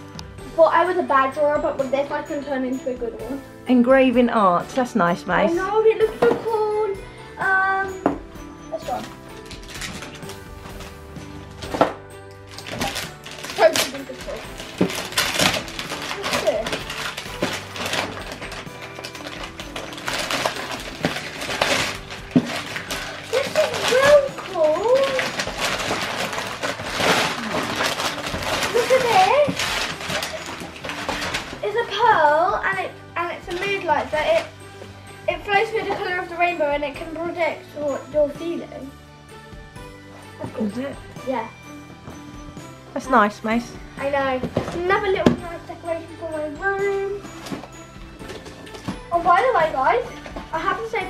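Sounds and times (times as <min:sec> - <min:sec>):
background music: 0:00.0 - 0:51.0
wrapping paper tearing and crinkling: 0:08.9 - 0:11.0, 0:12.4 - 0:32.0, 0:33.4 - 0:34.6.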